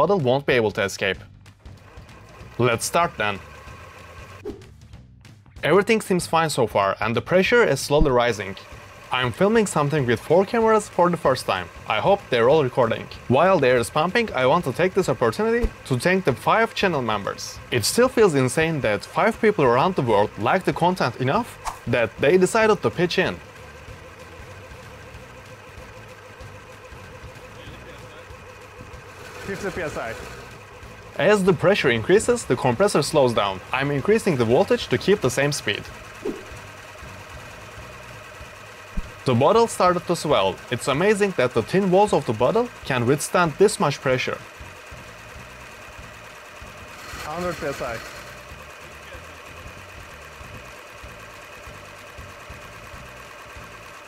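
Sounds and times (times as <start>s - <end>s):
air compressor humming and whining: 0.9s - 4.8s, 5.6s - 54.0s.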